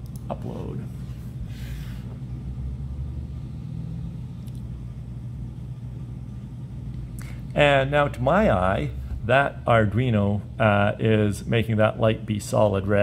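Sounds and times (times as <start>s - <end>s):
low hum and rumble: 0.0s - 13.0s.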